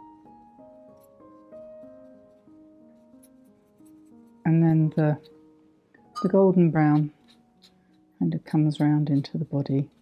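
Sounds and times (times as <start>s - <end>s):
soft background music: 0.0s - 10.0s
brush scratching on paper: 1.0s - 5.4s, 6.3s - 10.0s
person speaking: 4.5s - 5.3s, 6.2s - 7.4s, 8.2s - 10.0s.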